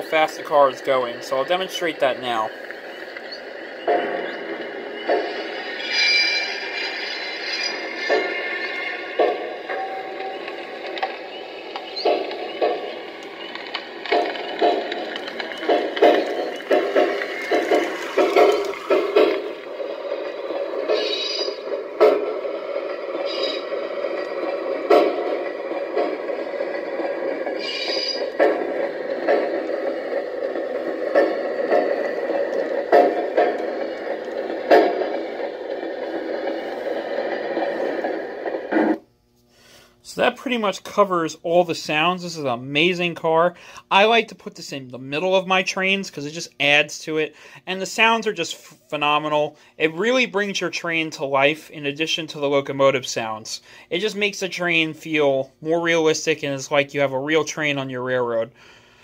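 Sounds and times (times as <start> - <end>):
clickety-clack of train wheels: 0.0 - 39.0
wheel screeches: 5.0 - 11.2, 20.8 - 22.3, 23.0 - 24.2, 27.4 - 28.6.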